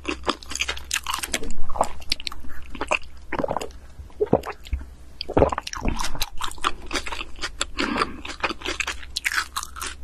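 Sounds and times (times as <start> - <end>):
chewing and crunching: 0.0 - 10.0.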